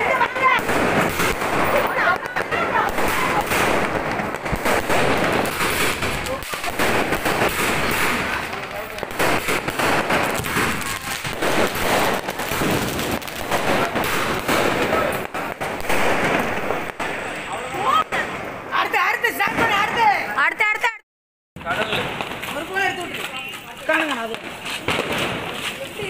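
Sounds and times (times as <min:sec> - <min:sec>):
sharp pops and bangs: 0:00.0 - 0:18.5, 0:21.6 - 0:26.0
fireworks bursting and crackling: 0:00.0 - 0:21.0, 0:21.6 - 0:26.0.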